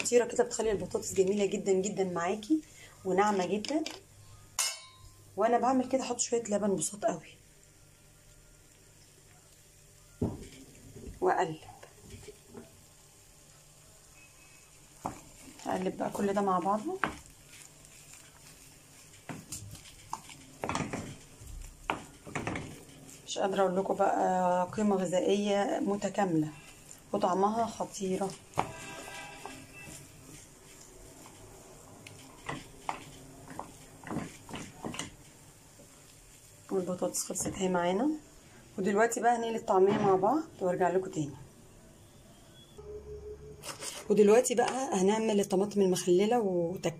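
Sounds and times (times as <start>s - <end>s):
faint steady tone: 7.6s - 10.4s, 41.8s - 43.7s
spatula stirring mashed potatoes: 8.5s - 38.2s
spatula scraping and knocking pan: 15.0s - 36.0s, 36.7s - 37.8s.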